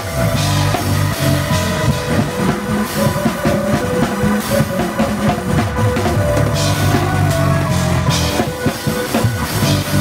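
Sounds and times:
drum kit with cymbals: 0:00.0 - 0:10.0
sustained keyboard chords: 0:00.0 - 0:10.0.

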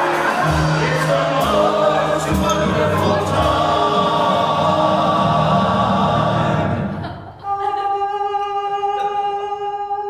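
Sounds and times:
men's chorus singing: 0:00.0 - 0:09.4.

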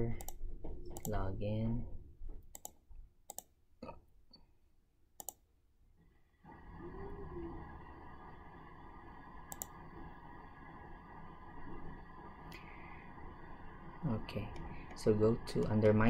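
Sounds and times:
low background hum: 0:00.0 - 0:16.0
computer mouse clicks: 0:00.2 - 0:00.4, 0:01.0 - 0:01.2, 0:02.5 - 0:03.5, 0:05.2 - 0:05.4, 0:09.5 - 0:09.8.

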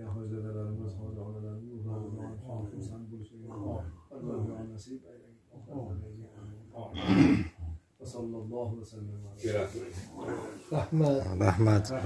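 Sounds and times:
man chanting a prayer: 0:00.0 - 0:06.9
man clearing throat: 0:06.9 - 0:07.6.

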